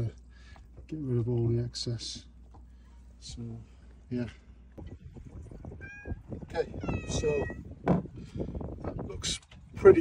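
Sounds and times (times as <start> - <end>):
cat meowing: 5.7 - 7.7.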